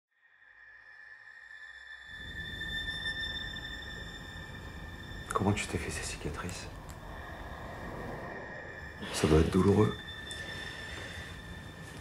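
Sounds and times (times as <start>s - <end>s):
high ringing drone: 0.3s - 12.0s.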